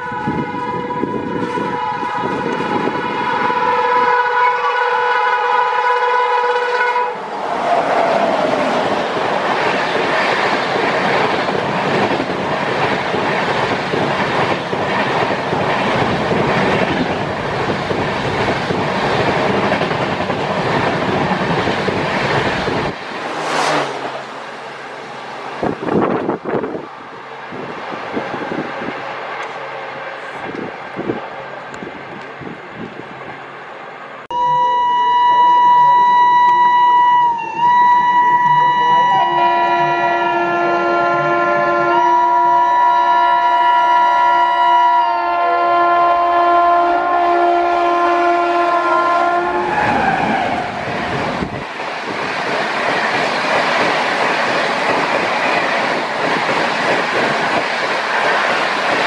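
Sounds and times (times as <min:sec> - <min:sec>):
locomotive horn blast: 0:00.0 - 0:07.3, 0:34.3 - 0:50.0
train coaches rushing past: 0:00.0 - 0:34.3, 0:45.1 - 0:59.0.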